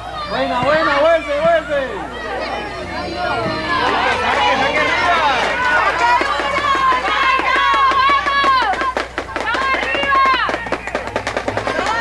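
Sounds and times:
people shouting: 0.0 - 12.0.

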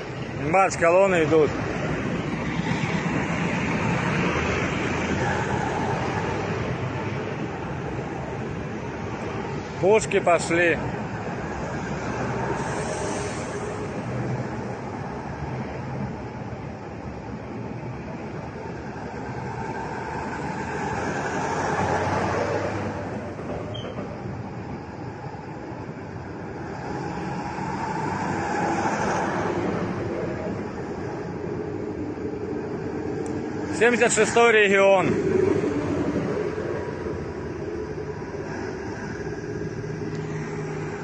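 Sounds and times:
trucks driving past: 0.0 - 41.0.

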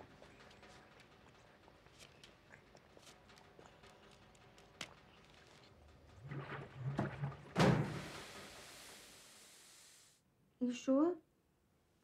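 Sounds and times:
steady hiss: 7.8 - 10.2.

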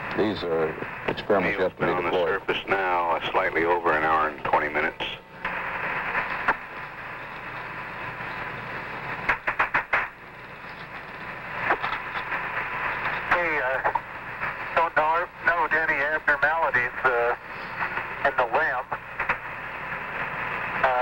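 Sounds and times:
radio static hiss: 0.0 - 21.0
garbled radio voice: 14.8 - 17.4, 18.2 - 19.0.

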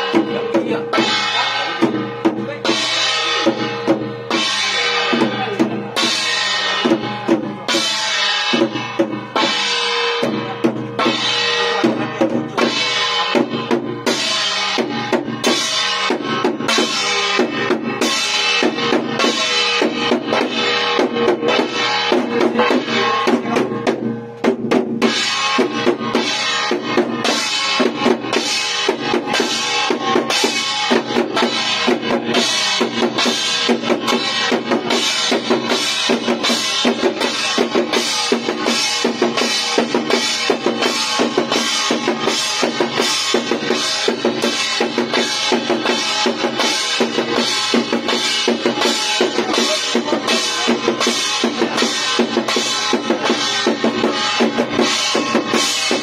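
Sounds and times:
hand drum beaten: 0.0 - 56.0.

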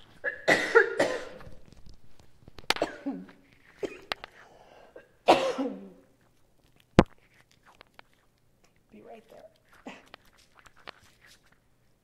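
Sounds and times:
woman coughing: 0.2 - 1.4, 2.8 - 4.1, 4.9 - 6.0.

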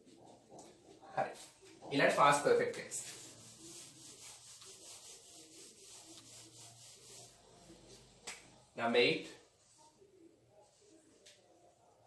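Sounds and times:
eraser rubbing whiteboard: 0.0 - 8.1.

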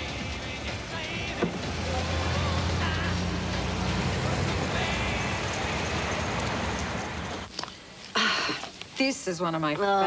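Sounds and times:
car engine running: 0.0 - 7.5.

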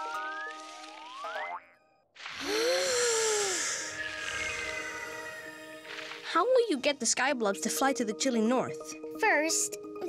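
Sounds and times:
rising stepped glide: 2.2 - 6.3
shimmering magical swell: 2.3 - 6.7.

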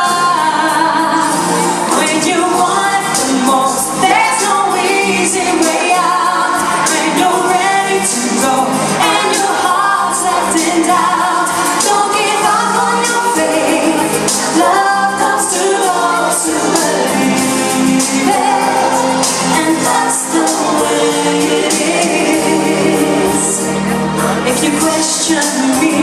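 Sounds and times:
instrumental accompaniment: 0.0 - 26.0
woman singing into microphone: 0.0 - 26.0.

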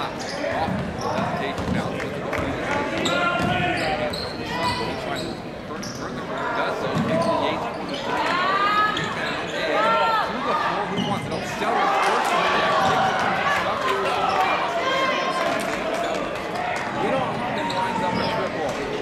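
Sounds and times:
sneakers squeaking: 0.0 - 10.0, 10.9 - 11.6, 14.2 - 19.0
spectators chattering: 0.0 - 19.0.

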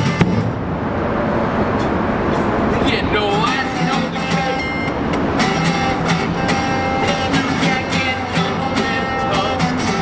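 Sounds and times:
acoustic guitar strumming: 0.0 - 1.0, 2.7 - 10.0
low traffic rumble: 0.0 - 10.0.

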